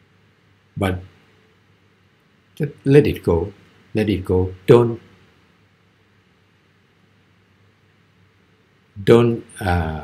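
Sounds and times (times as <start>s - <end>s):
room tone hiss: 0.0s - 10.0s.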